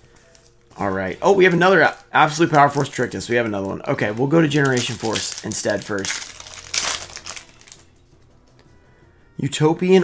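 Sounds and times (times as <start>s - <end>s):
foil wrapper crinkle and click: 0.2s - 7.9s.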